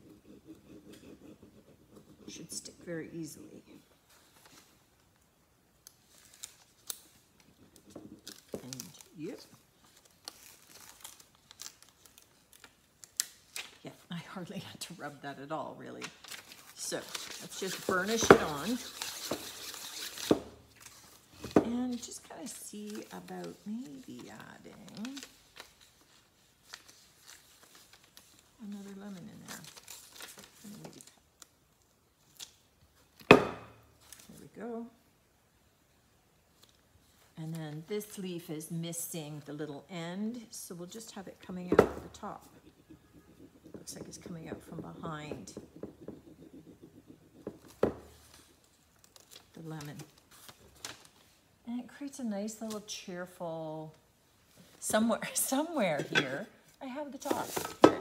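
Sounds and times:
plastic tool scratching on sheet: 0:00.0 - 0:02.8, 0:17.0 - 0:20.3, 0:42.2 - 0:48.4
plastic sheet crinkling: 0:05.9 - 0:13.8, 0:16.0 - 0:32.6, 0:42.1 - 0:51.6.

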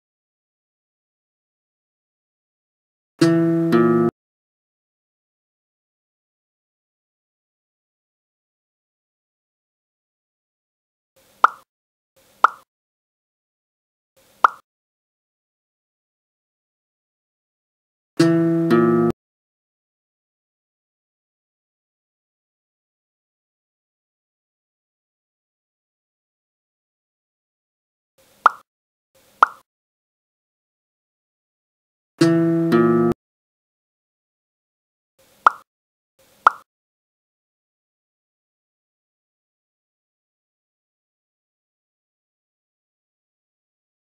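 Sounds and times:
cartoon pop sound effect: 0:11.4 - 0:11.7, 0:12.4 - 0:12.7, 0:14.4 - 0:14.6, 0:28.4 - 0:28.6, 0:29.4 - 0:29.6, 0:35.4 - 0:35.7, 0:36.4 - 0:36.7.

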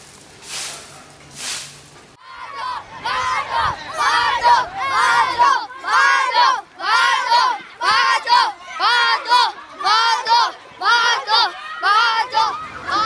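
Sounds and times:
children shouting in unison: 0:02.2 - 0:13.0.

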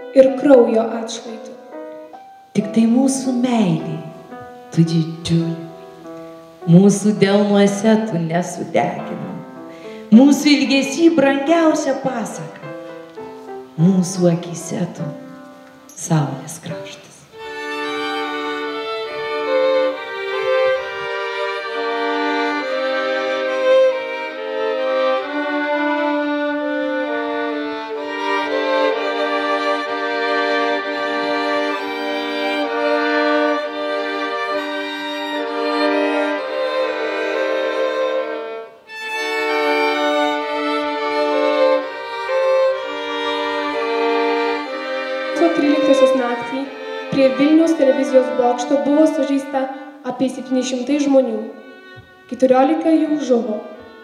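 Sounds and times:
violins playing melody: 0:00.0 - 0:54.0.

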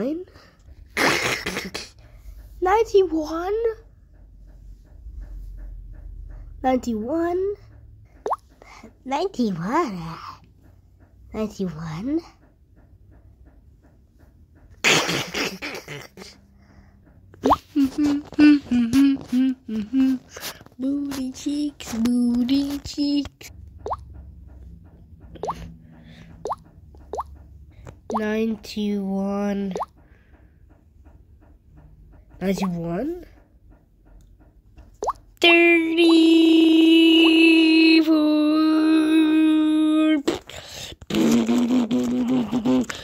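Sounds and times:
cartoon bloop sound effect: 0:25.4 - 0:25.6.

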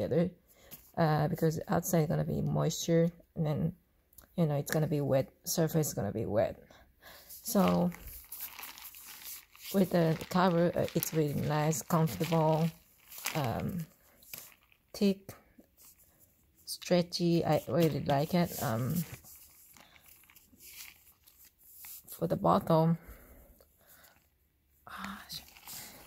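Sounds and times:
person speaking: 0:07.4 - 0:16.0, 0:16.6 - 0:19.6, 0:22.0 - 0:23.0, 0:24.9 - 0:26.0
plastic bottle crinkling: 0:07.4 - 0:22.2, 0:25.0 - 0:26.0.

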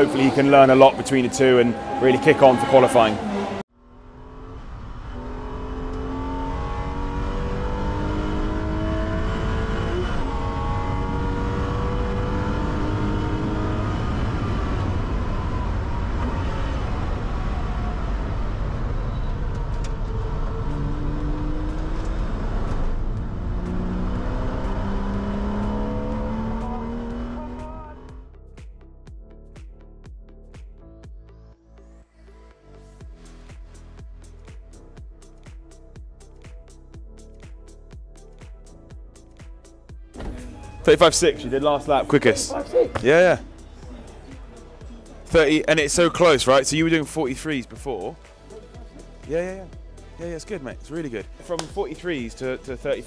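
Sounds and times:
race car engine revving: 0:00.0 - 0:28.2, 0:40.2 - 0:53.0
road and wind noise: 0:00.0 - 0:28.3, 0:39.7 - 0:53.0.

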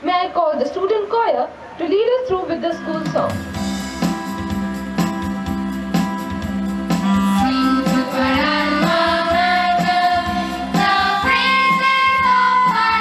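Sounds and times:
faint regular beat: 0:03.0 - 0:13.0
bamboo flute: 0:07.0 - 0:08.6
choir singing: 0:07.4 - 0:13.0.

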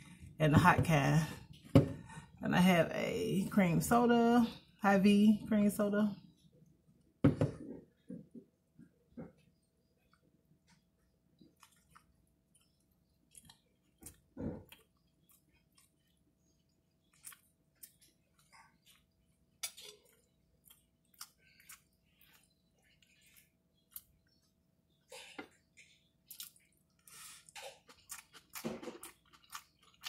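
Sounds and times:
person chewing: 0:09.5 - 0:24.6, 0:25.5 - 0:30.0.

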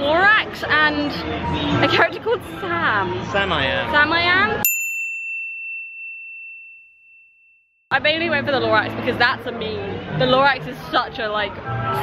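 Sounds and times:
high-pitched bell ding: 0:04.6 - 0:07.5.

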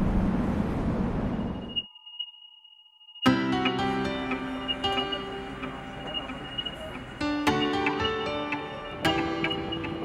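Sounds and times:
vehicle road and wind rumble: 0:00.0 - 0:01.7
high electronic tone: 0:01.3 - 0:10.0.

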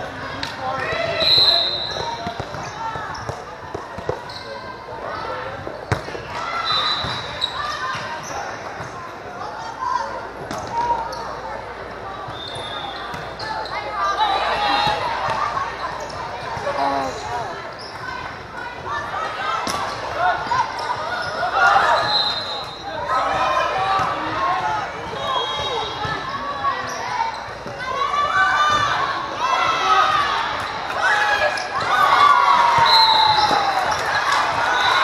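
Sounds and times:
referee whistle blast: 0:32.8 - 0:33.6.

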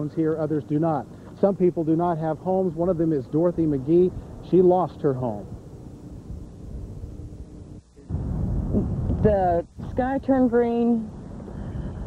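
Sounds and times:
wind noise on microphone: 0:05.4 - 0:12.0.

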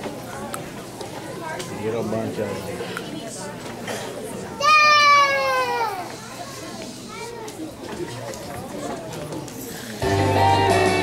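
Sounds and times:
crowd chatter: 0:00.0 - 0:11.0
child's high-pitched call: 0:04.6 - 0:06.1.

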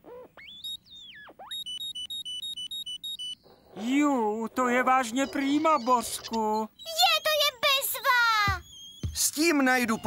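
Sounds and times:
cartoon metal detector beeping: 0:00.4 - 0:03.4, 0:04.6 - 0:10.0.

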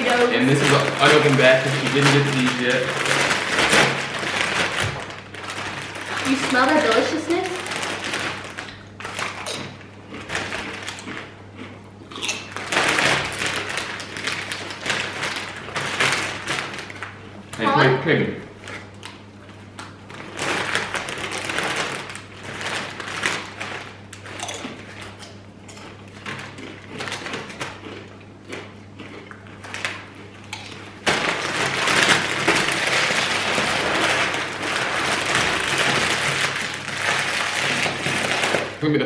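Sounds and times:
chips being crunched: 0:00.0 - 0:17.6, 0:19.8 - 0:38.8
chip bags crinkling: 0:00.0 - 0:39.0.

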